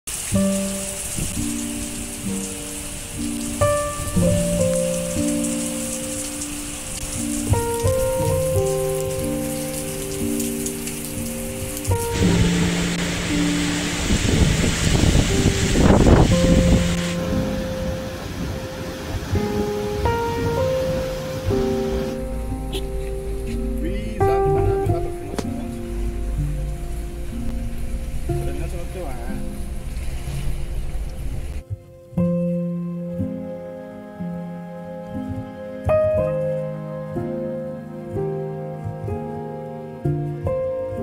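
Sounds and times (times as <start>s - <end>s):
heavy rain and wind: 0.1s - 41.0s
music of long held notes: 0.1s - 41.0s.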